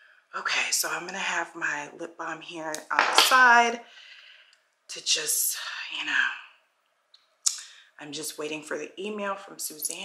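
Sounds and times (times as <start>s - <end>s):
woman speaking: 0.4s - 3.9s, 4.9s - 6.5s, 8.0s - 10.0s.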